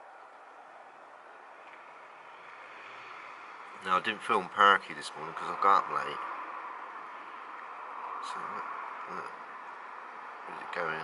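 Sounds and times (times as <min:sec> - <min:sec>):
distant road traffic: 0:00.0 - 0:11.0.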